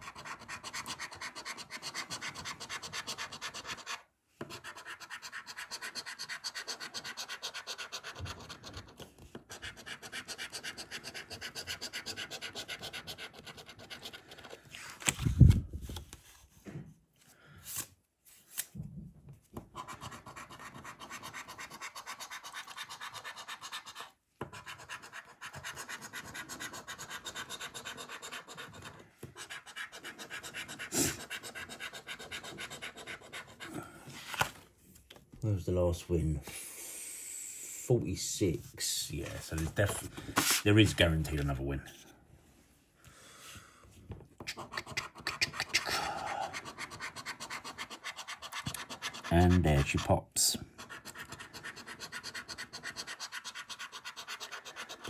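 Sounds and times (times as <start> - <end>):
coin scratching a scratchcard: 0.0 - 14.6, 19.7 - 33.7, 44.4 - 50.1, 50.8 - 55.0.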